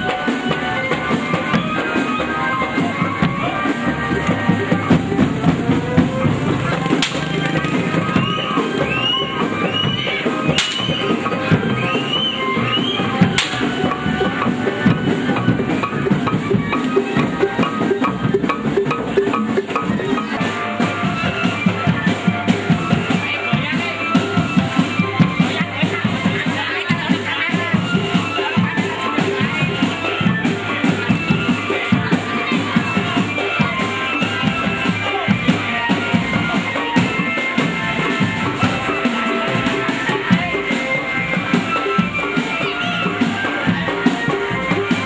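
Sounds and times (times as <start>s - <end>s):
procession drumming: 0.0s - 45.0s.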